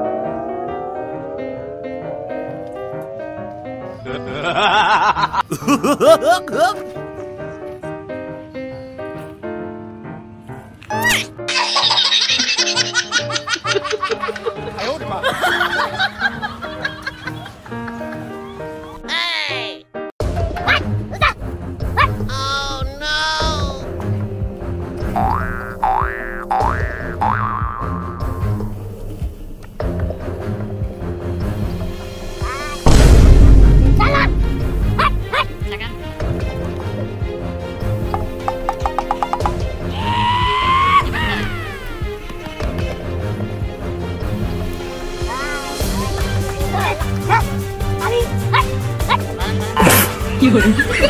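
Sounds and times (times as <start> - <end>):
comic rising pitch glides: 0.0 - 4.9
background music low beat: 20.2 - 45.1
dog yelping barks: 20.6 - 22.2, 48.4 - 49.2.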